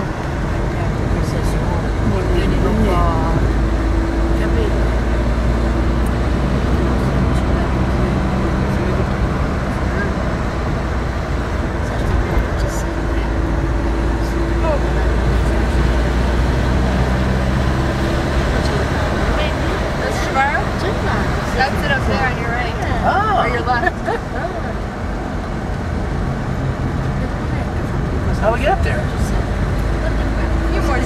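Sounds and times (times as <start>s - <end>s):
car engine and tyre noise: 0.0s - 31.0s.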